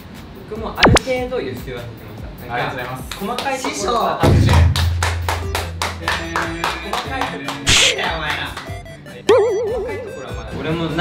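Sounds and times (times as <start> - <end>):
hands clapping rhythmically: 2.8 - 9.0
background music: 4.2 - 11.0.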